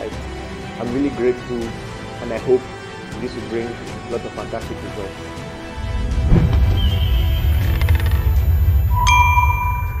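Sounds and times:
bright metallic ding: 9.0 - 10.0.

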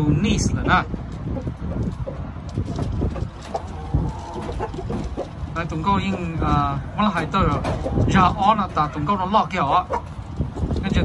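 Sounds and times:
chicken clucking: 0.8 - 6.5.

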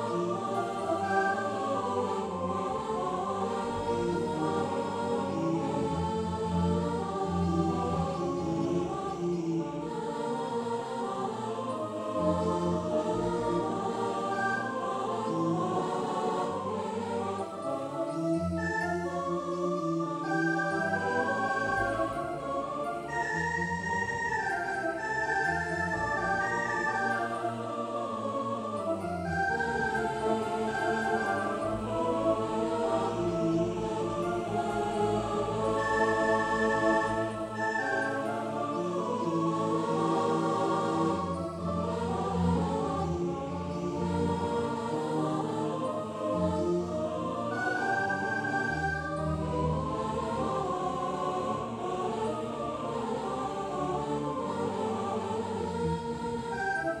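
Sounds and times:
synthesizer choir-like chords: 0.0 - 57.0.

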